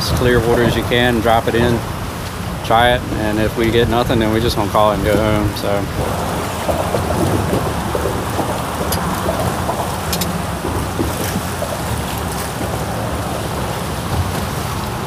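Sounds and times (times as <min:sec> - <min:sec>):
water slapping boat hull: 0:00.0 - 0:15.0
wind buffeting microphone: 0:00.0 - 0:15.0.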